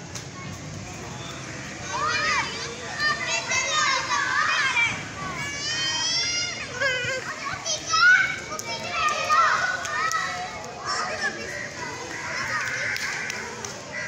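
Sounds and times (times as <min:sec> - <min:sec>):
children shouting at play: 0:00.3 - 0:14.0.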